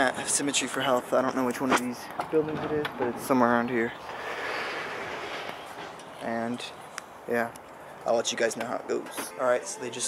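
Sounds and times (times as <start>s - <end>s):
passing vehicle road noise: 2.6s - 8.1s.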